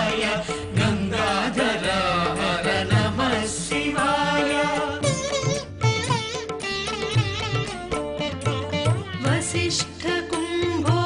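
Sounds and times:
chanted devotional singing: 0.0s - 5.6s, 9.1s - 11.0s.

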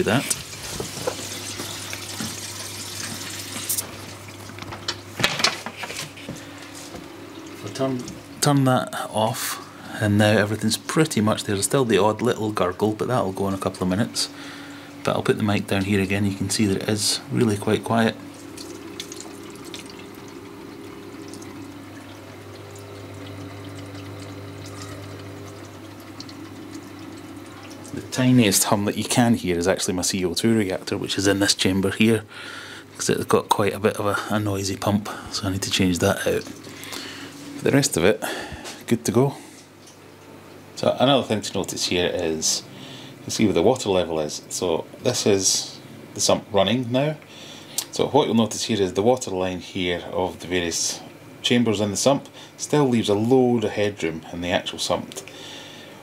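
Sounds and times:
water running and gurgling: 0.0s - 4.7s, 12.1s - 29.5s
low pump hum: 5.8s - 56.0s.

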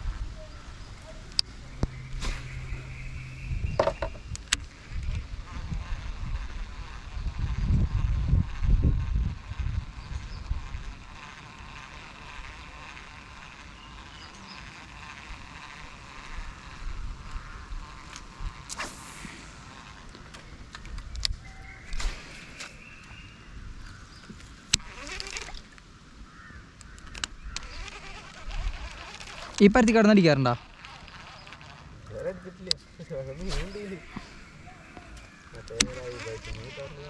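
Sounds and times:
low rumbling noise: 0.0s - 10.7s
insects buzzing: 0.0s - 37.0s
sharp clicks: 26.8s - 29.8s.

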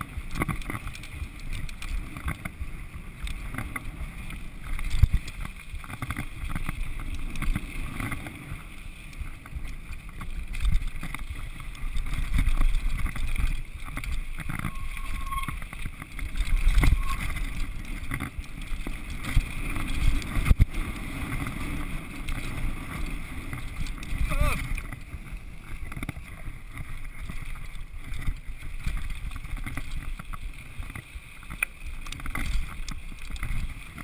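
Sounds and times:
mountain bike rattling on gravel: 0.0s - 34.0s.

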